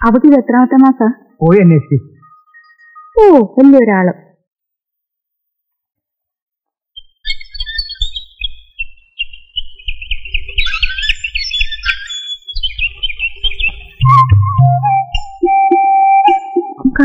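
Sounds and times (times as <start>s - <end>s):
bird-like twittering chirps: 7.0s - 16.8s.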